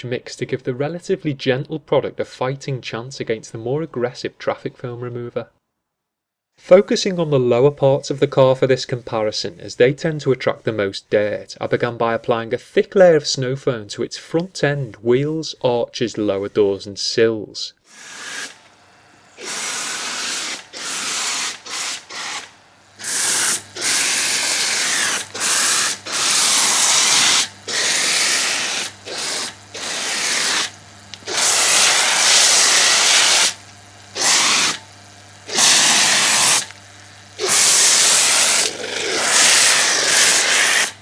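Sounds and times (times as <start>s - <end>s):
foam lance hissing spray: 17.8s - 36.8s, 37.4s - 41.0s.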